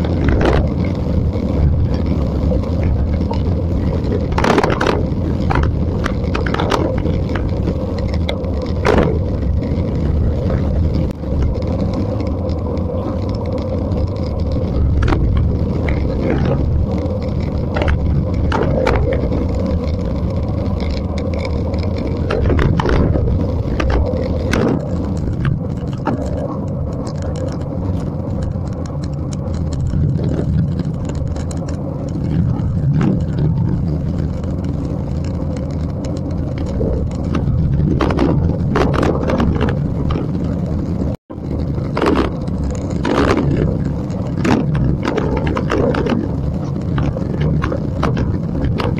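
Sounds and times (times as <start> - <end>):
bicycle tyre noise: 0.0 - 48.9
sharp clicks from bikes: 0.0 - 48.9
wind rushing over microphone: 0.0 - 48.9.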